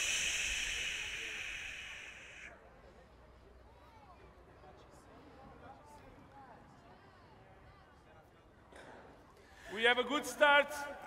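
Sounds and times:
person shushing: 0.0 - 2.5.

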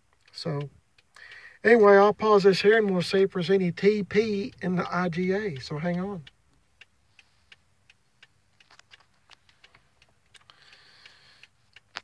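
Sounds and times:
hazard light flasher ticking: 0.2 - 12.0.

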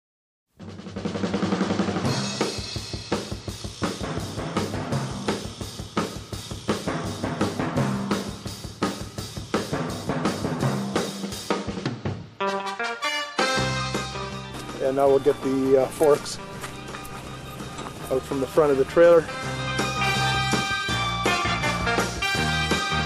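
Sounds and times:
drum kit playing a steady beat: 0.6 - 23.0
bass line: 4.0 - 5.6, 6.7 - 8.4, 13.4 - 23.0.

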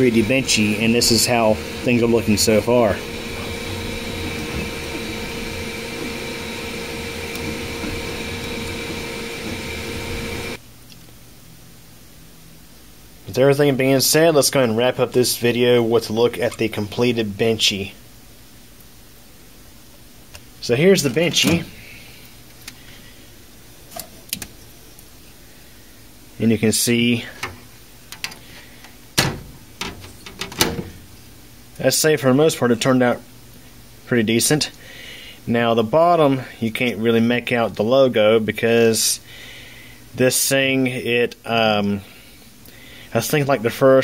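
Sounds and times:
printer fans and motors whirring: 0.0 - 10.6
room hum: 0.0 - 44.0.

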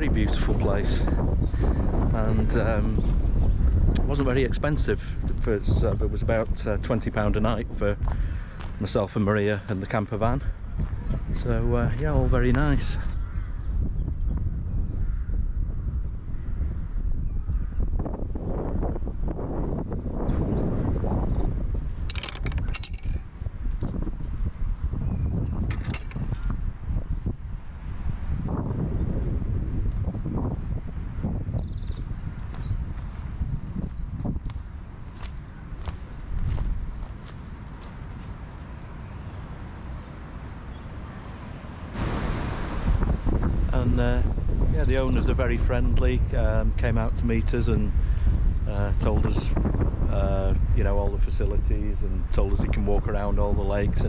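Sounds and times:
wind buffeting microphone: 0.0 - 54.0
small bird chirping: 40.6 - 45.5.

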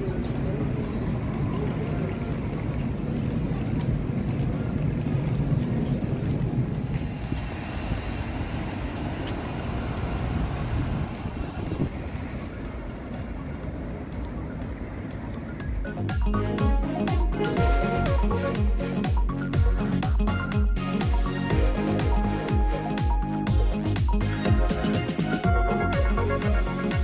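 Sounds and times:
city traffic rumble: 0.0 - 27.0.

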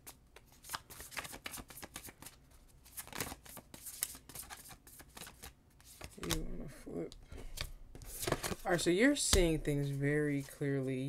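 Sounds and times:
cards being shuffled: 0.0 - 6.6, 7.4 - 10.6.

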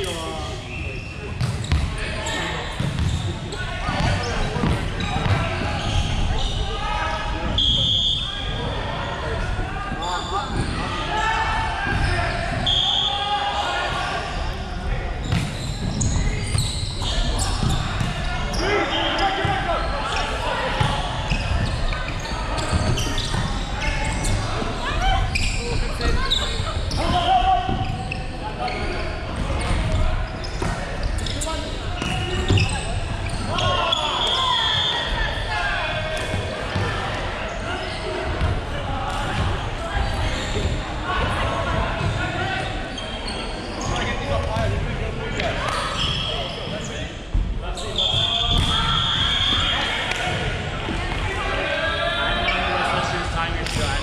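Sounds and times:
players calling out: 0.0 - 54.0
short shrill whistle: 7.6 - 8.3, 12.6 - 13.2.

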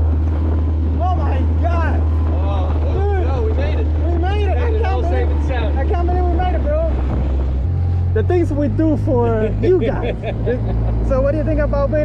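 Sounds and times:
wind on microphone: 0.0 - 8.2
outboard motor droning: 0.0 - 12.0.

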